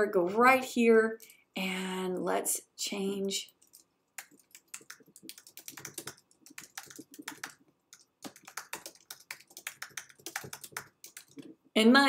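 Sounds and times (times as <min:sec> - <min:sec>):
computer keyboard typing: 0:03.5 - 0:11.5.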